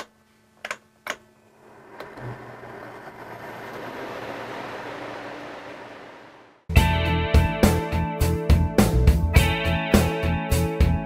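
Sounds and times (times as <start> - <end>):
air conditioner blower: 1.7 - 6.4.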